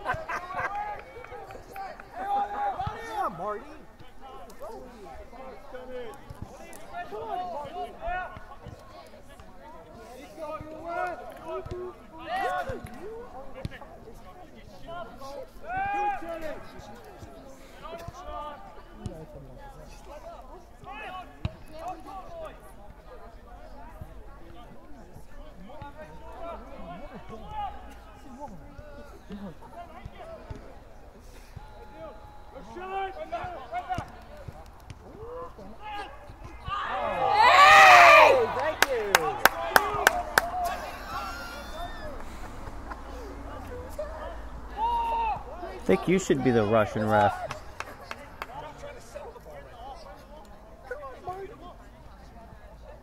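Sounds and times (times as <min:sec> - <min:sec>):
voices shouting: 0:35.1 - 0:47.8.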